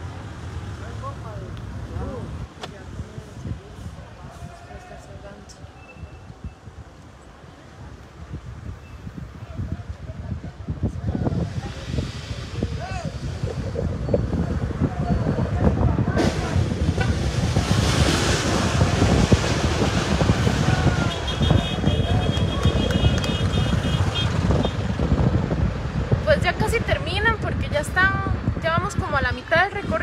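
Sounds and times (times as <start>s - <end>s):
moving car rumble: 0.0s - 30.0s
voices: 0.7s - 17.8s, 20.3s - 24.8s, 26.2s - 30.0s
wind on microphone: 1.5s - 30.0s.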